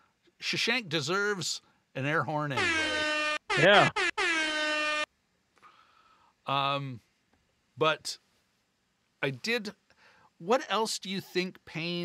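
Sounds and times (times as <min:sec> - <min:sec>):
air horn blast: 0:02.6 - 0:05.1.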